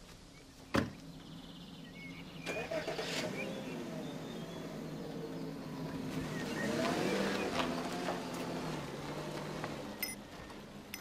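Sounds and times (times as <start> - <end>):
car engine starting and running: 0.8 - 11.0.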